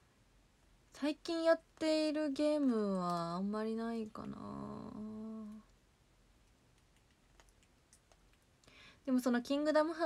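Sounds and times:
woman humming: 0:04.1 - 0:05.6
faint clicks: 0:05.4 - 0:05.8, 0:06.4 - 0:08.8.

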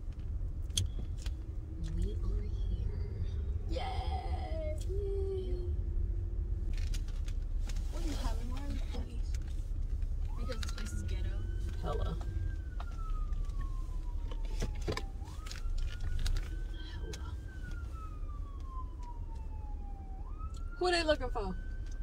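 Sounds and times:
steady low rumble: 0:00.0 - 0:22.0
police siren wailing: 0:10.1 - 0:22.0.

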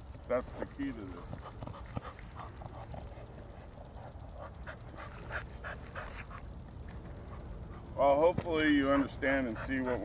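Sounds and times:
dog panting: 0:00.6 - 0:08.0, 0:08.6 - 0:10.0.

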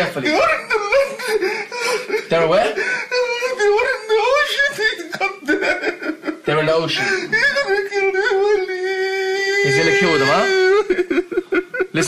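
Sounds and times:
man wailing: 0:00.2 - 0:12.0.

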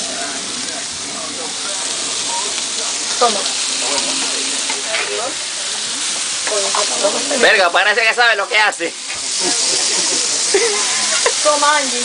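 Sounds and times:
fish sizzling on a griddle: 0:00.0 - 0:12.0.

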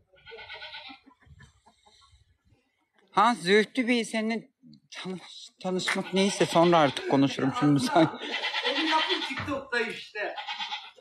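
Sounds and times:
farm animal call quavering: 0:05.8 - 0:09.4, 0:10.3 - 0:11.0.

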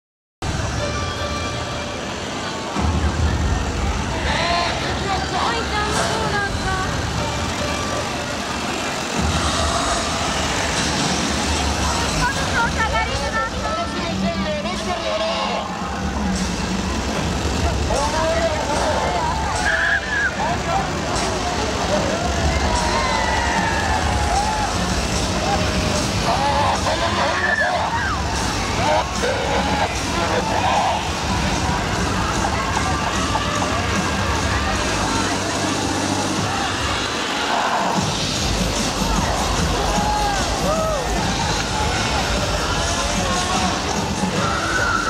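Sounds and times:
crowd talking and calling out: 0:00.4 - 0:45.0
chainsaw engines droning: 0:00.5 - 0:45.0.

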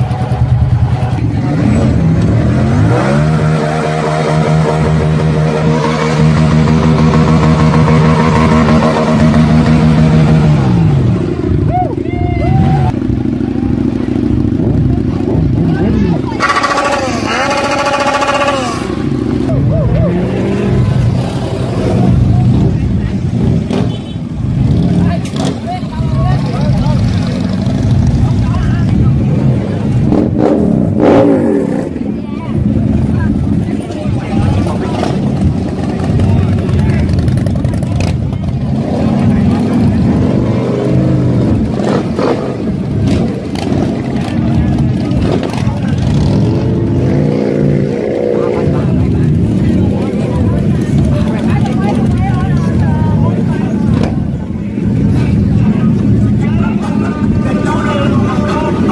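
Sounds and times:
crowd talking: 0:00.0 - 0:58.9
motorcycle engines revving: 0:00.0 - 0:58.9.

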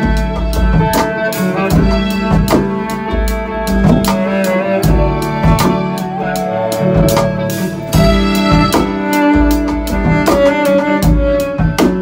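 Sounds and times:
bass line: 0:00.0 - 0:12.0
drum kit with cymbals: 0:00.0 - 0:12.0.

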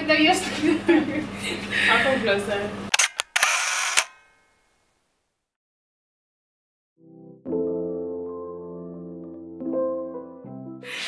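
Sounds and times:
camera shutter clicks: 0:02.9 - 0:04.4.

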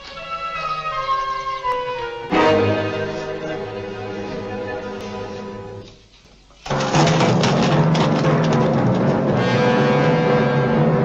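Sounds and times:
orchestral low chord: 0:00.8 - 0:05.9, 0:09.3 - 0:11.0.

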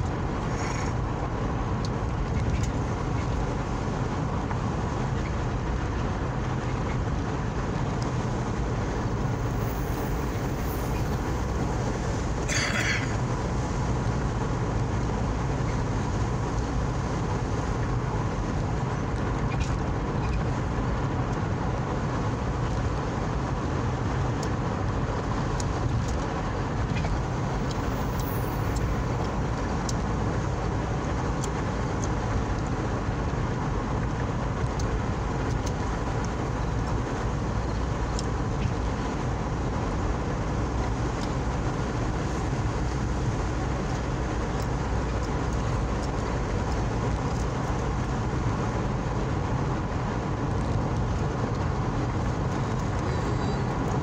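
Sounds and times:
car road noise: 0:00.0 - 0:54.0.

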